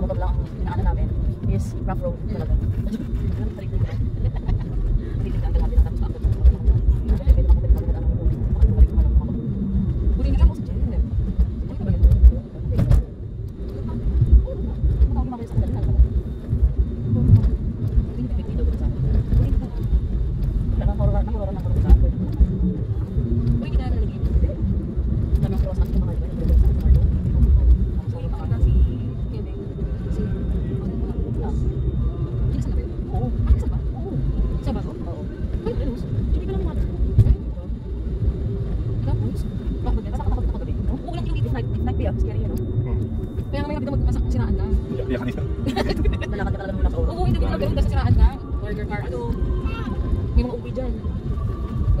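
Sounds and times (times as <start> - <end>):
car engine and tyre rumble: 0.0 - 52.0.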